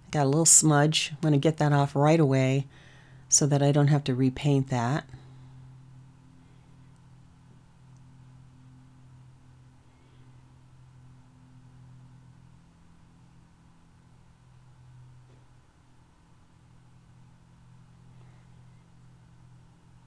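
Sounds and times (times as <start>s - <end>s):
faint low room hum: 0.0s - 20.0s.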